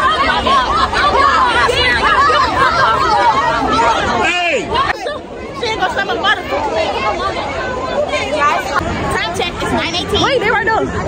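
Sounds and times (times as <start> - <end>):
crowd of young people talking: 0.0 - 11.0.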